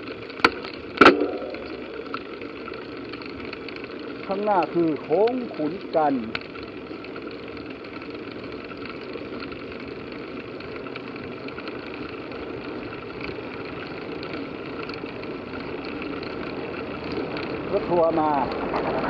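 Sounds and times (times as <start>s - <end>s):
bicycle riding noise: 0.0s - 19.0s.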